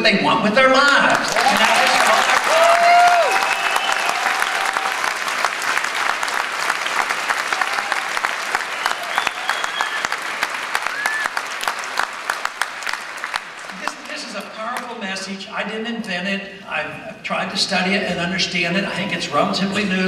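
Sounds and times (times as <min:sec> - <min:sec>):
audience applauding: 0:01.1 - 0:14.9
cheers and shouts: 0:01.3 - 0:05.4, 0:07.3 - 0:11.4.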